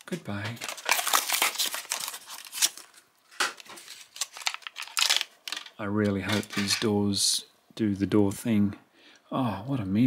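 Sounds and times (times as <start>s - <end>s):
plastic blister crinkling: 0.3s - 6.9s
cardboard tearing: 0.6s - 5.7s.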